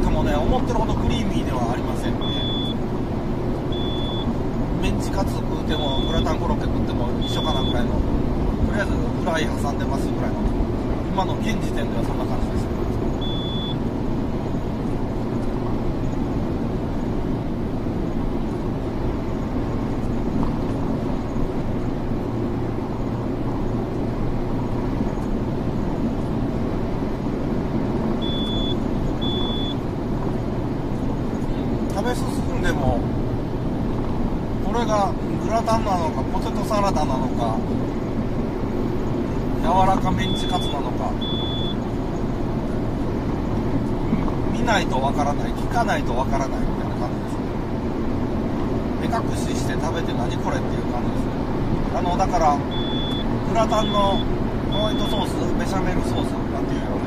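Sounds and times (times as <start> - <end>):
car road and engine noise: 0.0 - 57.0
short high beeps: 2.2 - 2.8, 3.7 - 4.3, 5.8 - 6.4, 7.2 - 7.9, 13.2 - 13.8, 28.2 - 29.8, 40.2 - 41.8, 52.7 - 55.3.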